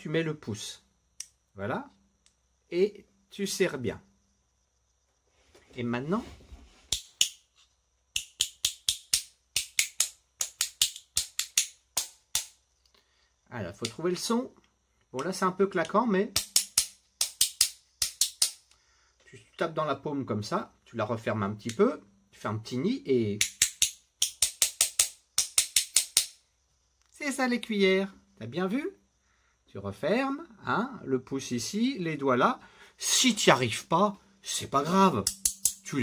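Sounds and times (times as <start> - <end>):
spoons clacking against palm: 6.9 - 7.4, 8.2 - 12.6, 16.4 - 18.7, 23.4 - 26.4, 35.2 - 35.9.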